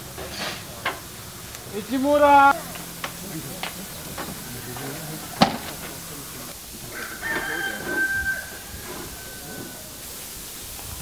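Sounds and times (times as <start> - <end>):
rooster crowing: 1.2 - 11.0.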